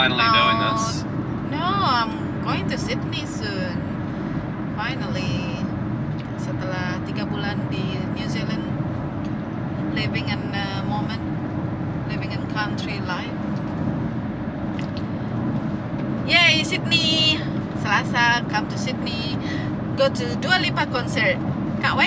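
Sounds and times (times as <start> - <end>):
woman talking: 0.0 - 3.9, 4.8 - 5.7, 6.4 - 8.7, 9.9 - 11.2, 12.1 - 13.4, 16.3 - 22.0
car road and engine noise: 0.0 - 22.0.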